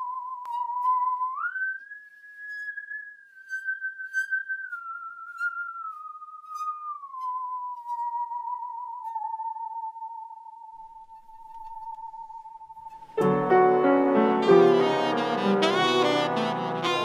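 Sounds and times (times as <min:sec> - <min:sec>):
pure wavering lead melody: 0:05.6 - 0:17.0.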